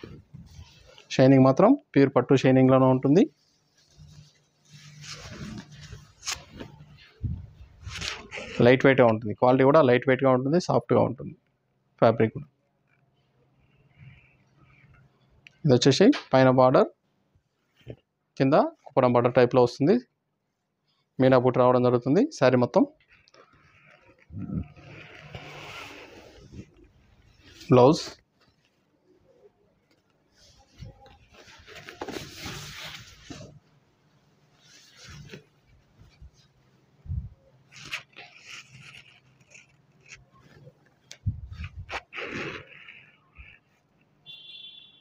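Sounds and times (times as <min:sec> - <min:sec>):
silk fabric rustling: 0:00.0 - 0:01.1, 0:03.3 - 0:08.6, 0:23.5 - 0:29.0, 0:29.9 - 0:43.6.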